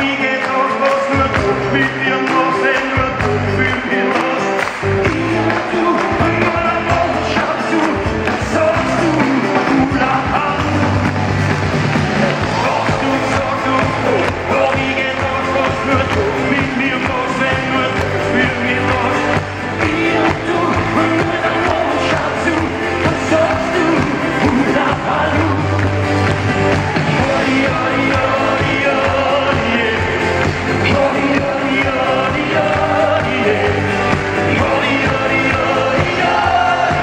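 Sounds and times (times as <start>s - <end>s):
person singing: 0.0s - 37.0s.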